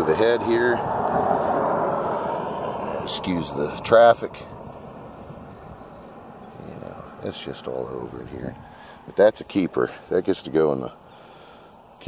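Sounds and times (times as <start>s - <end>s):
passing vehicle rushing: 0.0s - 8.2s.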